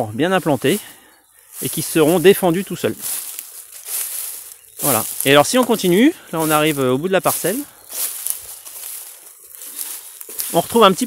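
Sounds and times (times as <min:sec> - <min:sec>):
legs rustling through grass: 0:00.0 - 0:11.0.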